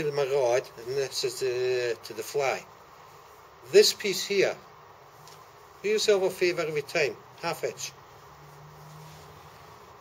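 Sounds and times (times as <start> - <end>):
person speaking: 0.0 - 2.7, 3.6 - 4.7, 5.8 - 8.1.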